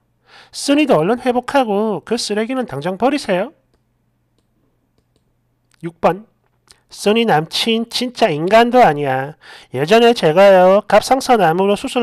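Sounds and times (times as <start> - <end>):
man speaking: 0.6 - 3.6, 5.8 - 12.0.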